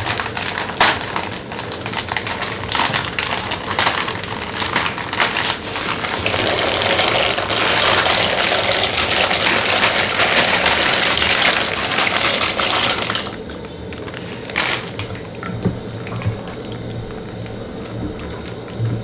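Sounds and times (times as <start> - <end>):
pasta poured into water: 0.0 - 13.5
water boiling in a pot: 0.0 - 19.0.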